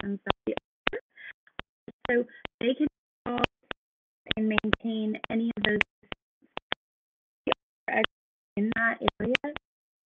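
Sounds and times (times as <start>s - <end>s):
person's voice: 0.0s - 1.3s, 1.9s - 5.8s, 7.9s - 9.6s.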